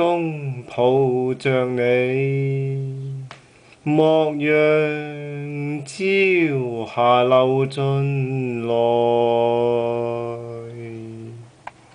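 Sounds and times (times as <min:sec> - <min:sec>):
man singing a slow ballad: 0:00.0 - 0:11.6.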